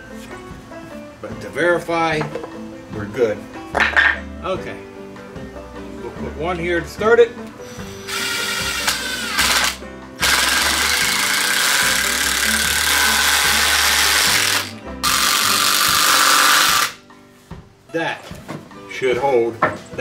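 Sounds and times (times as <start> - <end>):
cordless drill driving screws: 7.9 - 17.0.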